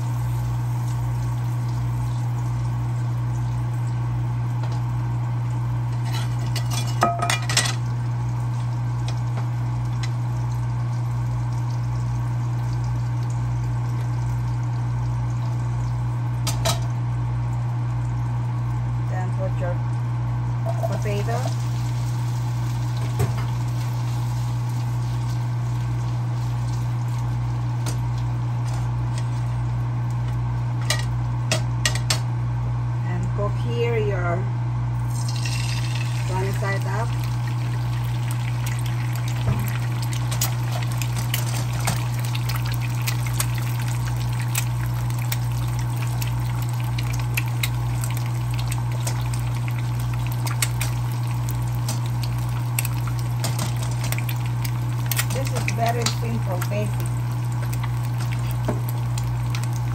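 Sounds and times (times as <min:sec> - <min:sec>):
potatoes sizzling in a pan: 0:00.0 - 0:04.8, 0:20.7 - 0:29.1, 0:35.0 - 0:59.9.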